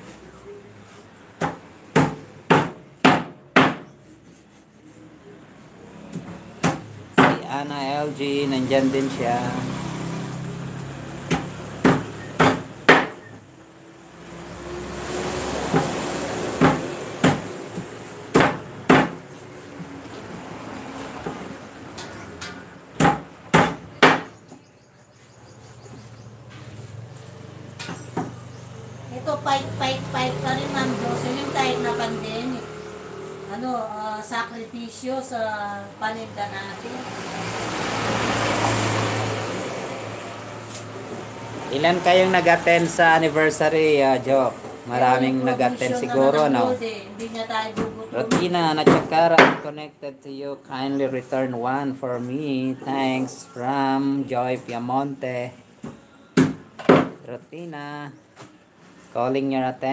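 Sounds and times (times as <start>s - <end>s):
knife chopping on wooden board: 1.4s - 3.9s, 6.2s - 7.4s, 11.2s - 13.2s, 16.6s - 19.2s, 23.0s - 24.3s, 47.8s - 49.6s.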